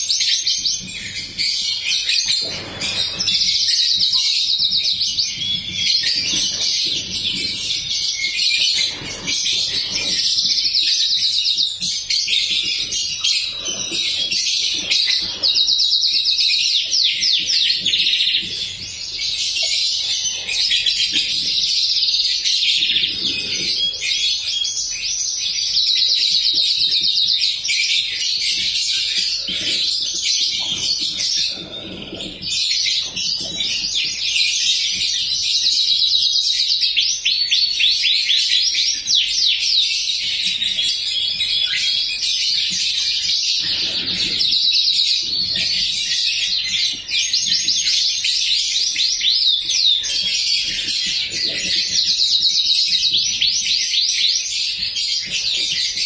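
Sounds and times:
canary singing trills: 0.0s - 56.0s.

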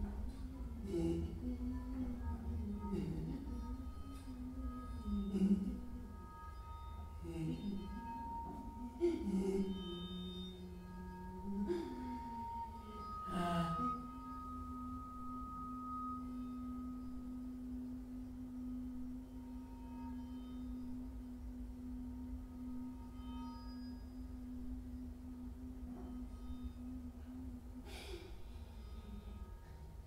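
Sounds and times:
steady pure tone: 0.0s - 30.0s.

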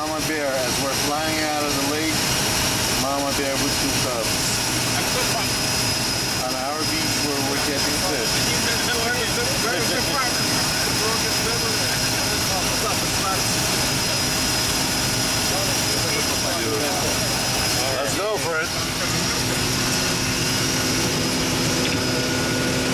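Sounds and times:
propeller engine running: 0.0s - 22.9s.

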